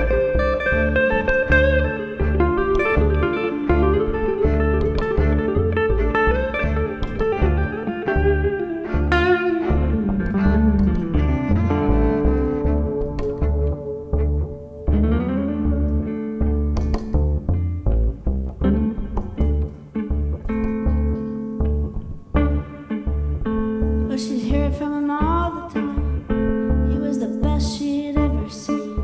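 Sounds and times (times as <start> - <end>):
electric guitar lead lines: 0.0 - 29.0
plucked double bass: 0.0 - 29.0
violin: 0.0 - 29.0.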